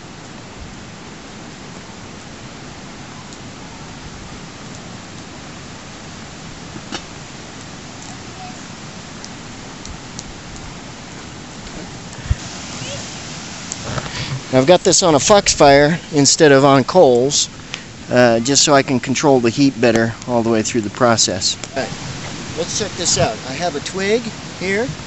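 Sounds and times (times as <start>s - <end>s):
steady rushing hiss: 0.0s - 25.0s
faint clicks: 9.2s - 10.7s, 17.1s - 17.9s.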